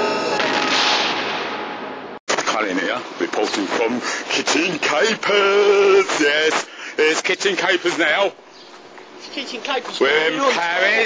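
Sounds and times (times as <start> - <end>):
loud noisy crash: 0.0 - 2.5
man speaking: 2.4 - 8.4, 10.0 - 11.0.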